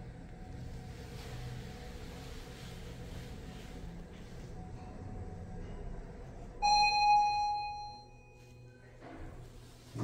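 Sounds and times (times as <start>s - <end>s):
faint low elevator hum: 0.0s - 10.0s
elevator arrival chime: 6.6s - 8.9s.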